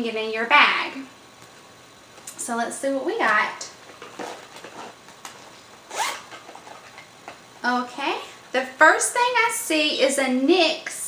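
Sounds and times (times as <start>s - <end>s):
rustling cosmetic bag: 3.8s - 7.1s.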